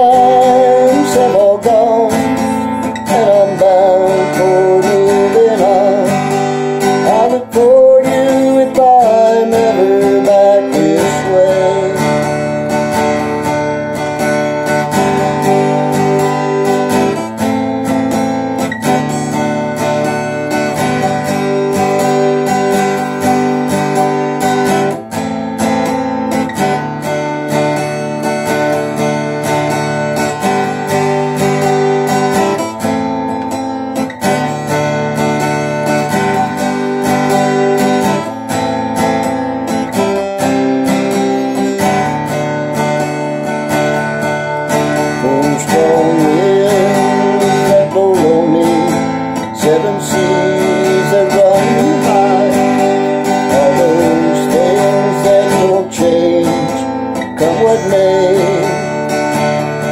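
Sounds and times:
acoustic guitar strumming: 0.0s - 59.9s.

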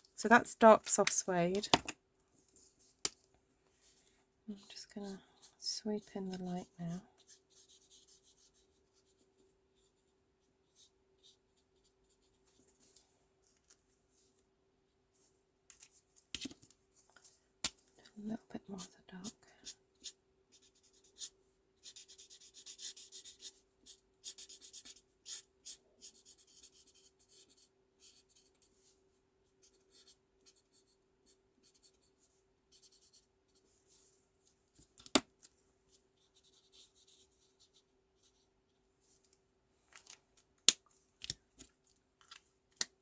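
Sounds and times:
marker nib scratching on card: 19.6s - 23.5s.

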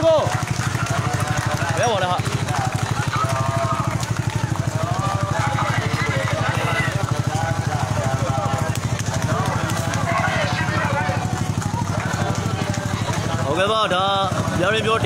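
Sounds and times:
engine idling: 0.0s - 15.0s
people calling out: 0.0s - 15.0s.

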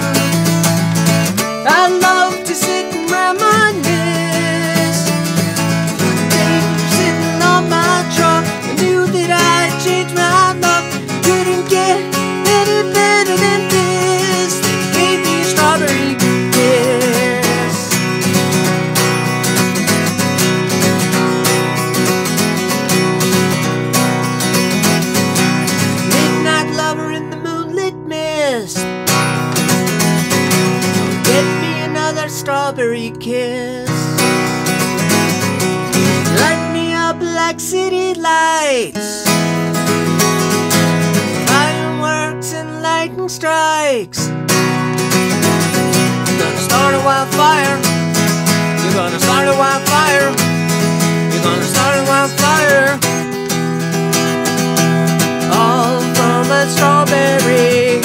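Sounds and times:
man singing: 0.0s - 0.5s, 1.6s - 18.2s, 26.0s - 28.9s, 31.2s - 34.3s, 36.2s - 39.4s, 41.4s - 44.4s, 45.7s - 53.5s, 55.4s - 58.0s
acoustic guitar strummed: 0.0s - 58.0s.

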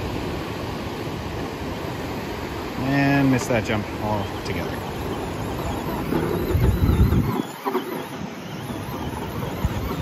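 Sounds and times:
electric rc truck motor: 1.0s - 10.0s.

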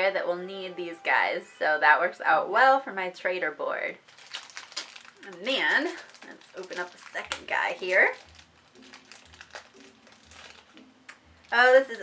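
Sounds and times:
plastic bag crinkling: 4.0s - 12.0s.

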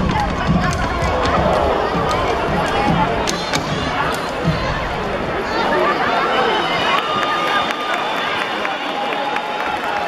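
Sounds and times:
foot stomps: 0.0s - 4.9s
voices shouting: 0.1s - 10.0s.

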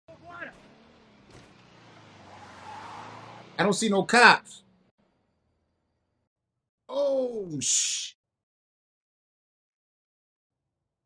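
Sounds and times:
car engine: 0.1s - 6.2s.

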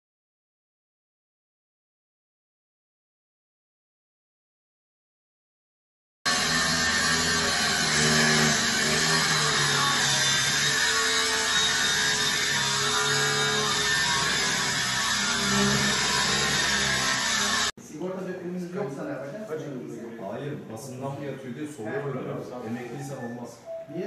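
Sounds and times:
angle grinder cutting metal: 6.3s - 17.8s.

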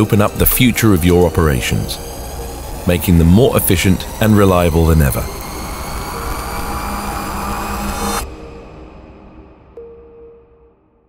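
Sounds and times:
jet-like rushing drone: 0.0s - 9.8s.

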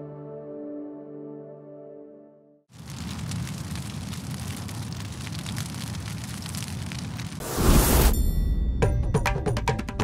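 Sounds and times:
steady rumbling with crackling: 2.7s - 8.2s.

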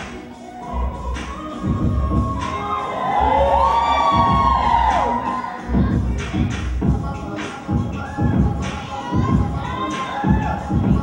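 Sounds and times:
heavy bass beat: 0.0s - 11.0s.

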